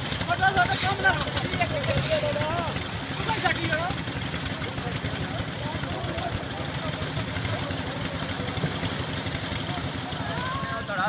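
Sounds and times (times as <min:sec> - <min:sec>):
concrete mixer engine chugging: 0:00.0 - 0:11.0.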